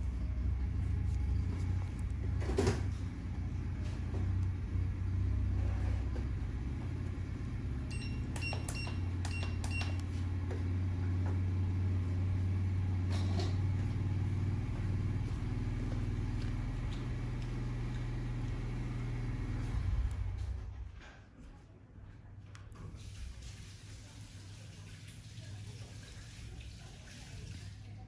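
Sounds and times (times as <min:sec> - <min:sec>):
low machine hum: 0:00.0 - 0:26.9
short high electronic beeps: 0:07.9 - 0:10.0.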